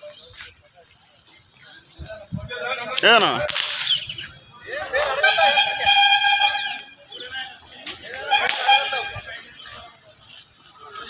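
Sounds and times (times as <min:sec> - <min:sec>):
people's voices: 0:00.0 - 0:11.0
vehicle horn long note: 0:05.2 - 0:07.0, 0:08.3 - 0:09.3.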